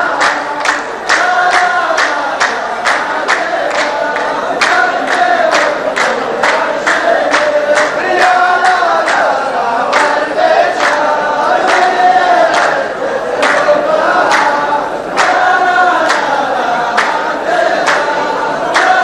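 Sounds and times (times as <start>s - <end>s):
men chanting in unison: 0.0s - 19.0s
rhythmic handclaps: 0.0s - 19.0s.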